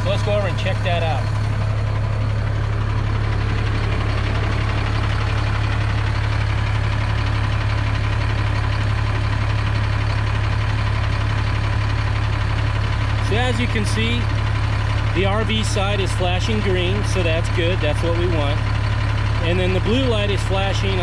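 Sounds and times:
engine idling: 0.0 - 21.0.

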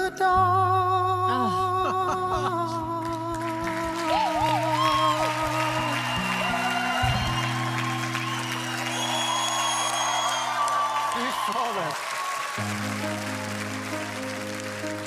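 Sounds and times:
band music: 1.3 - 11.9, 12.5 - 15.0
audience applauding and cheering: 2.4 - 15.0.

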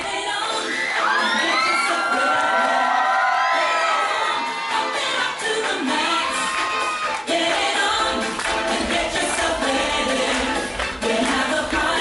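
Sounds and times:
dance music: 0.0 - 12.0
audience cheering and screaming: 0.5 - 7.3.

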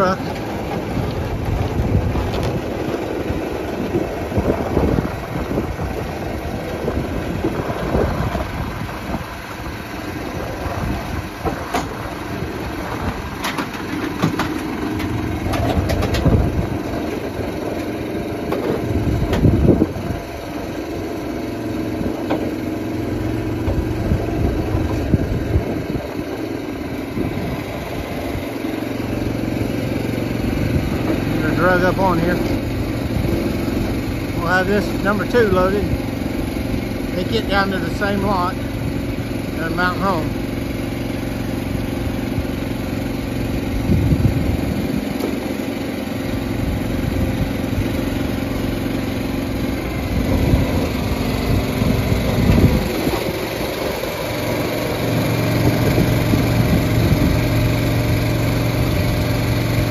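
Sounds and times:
engine running: 0.0 - 59.9.

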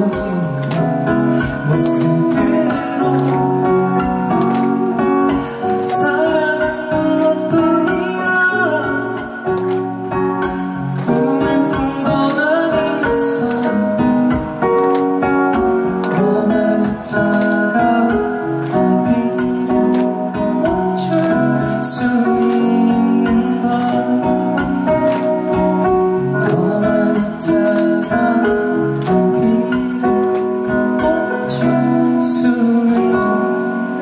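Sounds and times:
man singing into microphone: 0.0 - 14.7, 15.8 - 34.0
instrumental backing music: 0.0 - 34.0.

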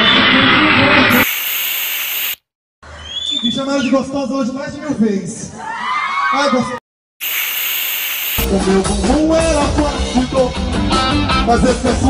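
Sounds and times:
high hissing noise: 1.1 - 2.4, 7.2 - 8.5
man singing: 8.5 - 12.0.

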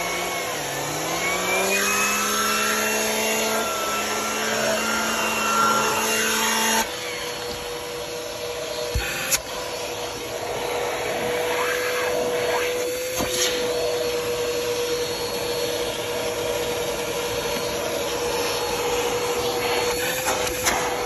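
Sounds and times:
vacuum cleaner brush hum: 0.0 - 21.0
vacuum hose suction whine: 0.0 - 21.0.

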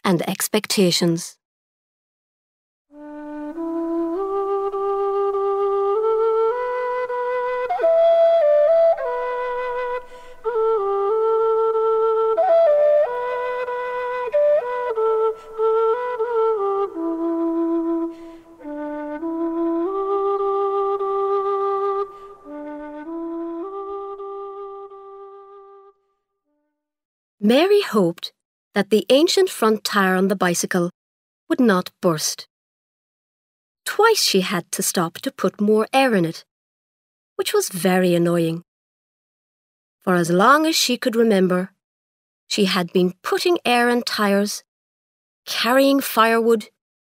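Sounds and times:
slow flute melody: 2.9 - 26.2.

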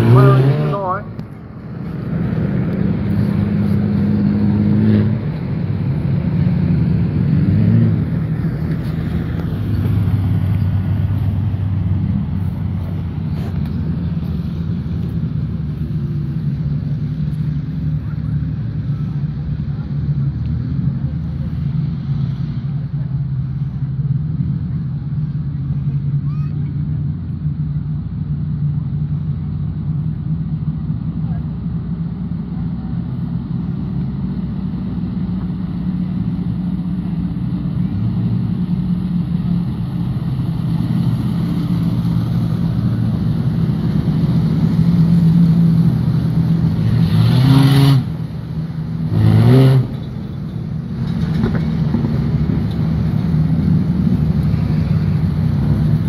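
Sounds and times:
engine revving: 0.0 - 1.2, 2.0 - 22.9, 34.9 - 56.0
race car engines droning: 0.0 - 56.0.

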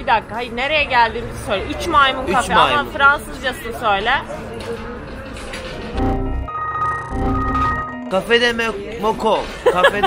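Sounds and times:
electronic beeping tones: 6.0 - 8.2.

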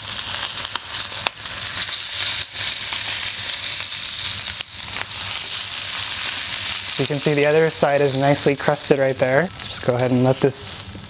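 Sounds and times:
steak sizzling in a skillet: 0.0 - 11.0.

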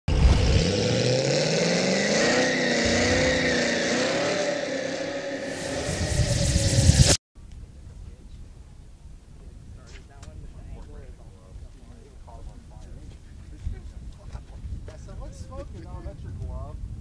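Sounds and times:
car engine revving: 0.1 - 7.2
rushing noise: 0.1 - 7.2.

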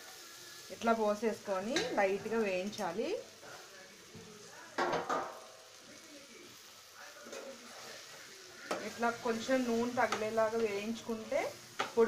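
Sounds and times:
woman talking: 0.7 - 3.3, 8.8 - 12.0.

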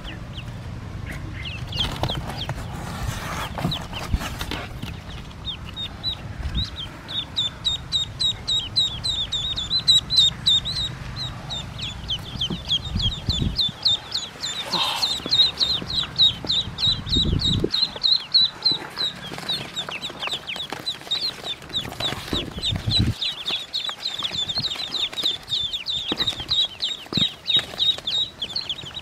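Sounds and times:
ducklings peeping: 0.0 - 29.0.

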